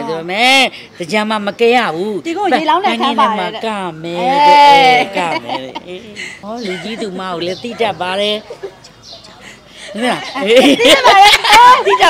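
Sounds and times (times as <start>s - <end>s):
woman speaking: 2.4s - 3.6s.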